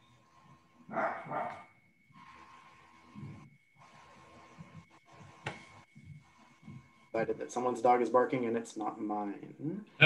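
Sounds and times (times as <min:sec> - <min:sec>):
dog barking: 0:00.9 - 0:01.7.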